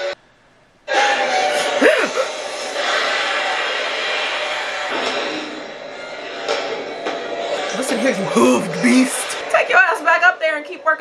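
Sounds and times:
shrieking cry: 1.4 - 2.5.

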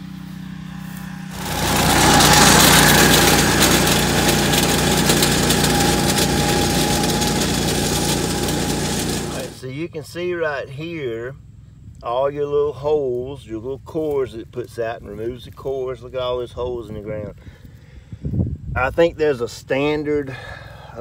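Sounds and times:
lawn aerator engine running: 0.0 - 9.6.

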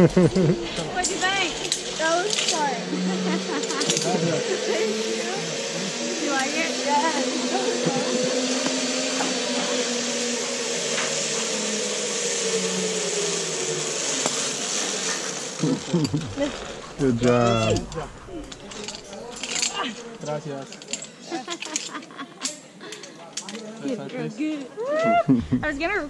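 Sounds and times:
zip line pulleys whirring: 0.0 - 25.9.

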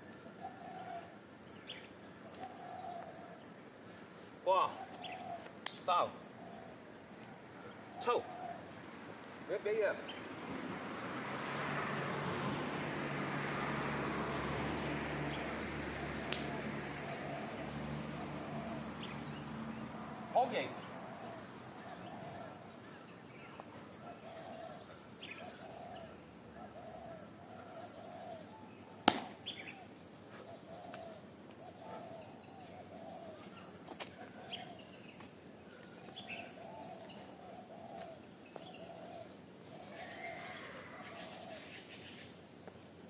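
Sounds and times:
bird calling: 0.0 - 3.5, 4.4 - 8.9, 15.4 - 42.4
sharp smack of strikes: 29.0 - 29.4.

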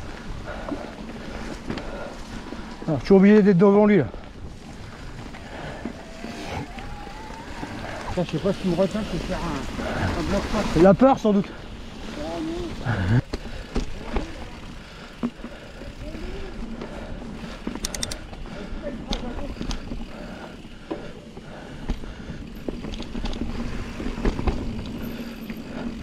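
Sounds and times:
bike knocking and rattling: 0.0 - 26.0
bike tyres rushing on dirt: 0.0 - 26.0.

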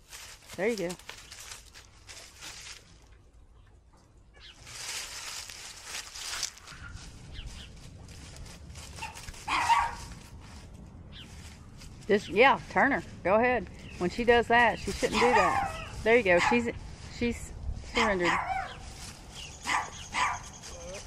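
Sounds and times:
feet shuffling through dry leaves: 0.0 - 3.1, 4.4 - 13.2, 13.8 - 21.0
dog barking: 9.0 - 10.1, 15.1 - 16.6, 18.0 - 18.8, 19.6 - 20.6.

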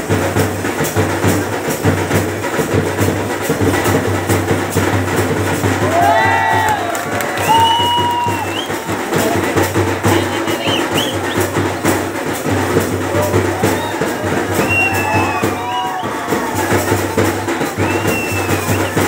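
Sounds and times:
drum beating fast rhythm: 0.0 - 19.0
high drawn-out call: 5.8 - 11.7, 13.1 - 19.0.

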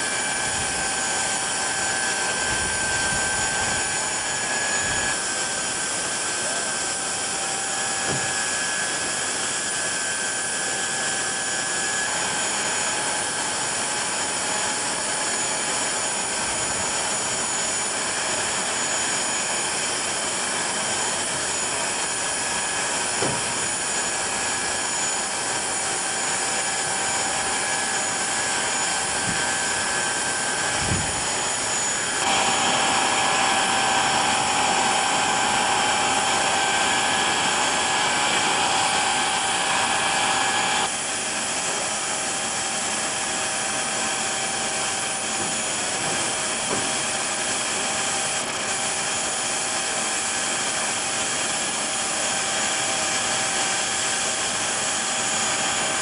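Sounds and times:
jet turbine running: 0.0 - 56.0.

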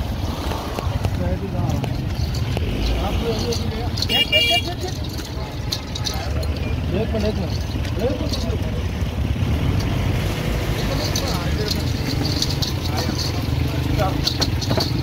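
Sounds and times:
vehicle engine idling: 0.0 - 15.0
people talking: 0.6 - 9.2, 10.6 - 14.6.

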